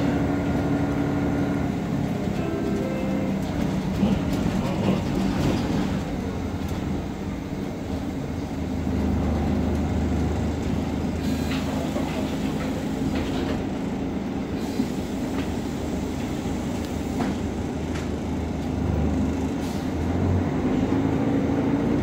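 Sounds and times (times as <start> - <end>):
bus engine low rumble: 0.0 - 22.0
clicks and rattles of bus body: 3.4 - 8.0, 9.0 - 19.9.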